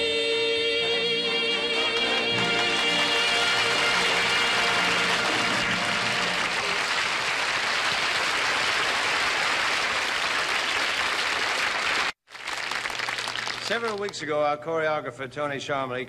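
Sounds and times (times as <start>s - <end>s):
audience applauding: 1.9s - 14.2s.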